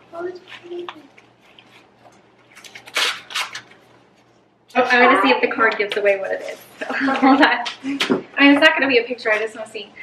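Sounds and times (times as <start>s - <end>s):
paper and packaging rustling: 0.1s - 4.4s
woman's voice: 4.7s - 10.0s.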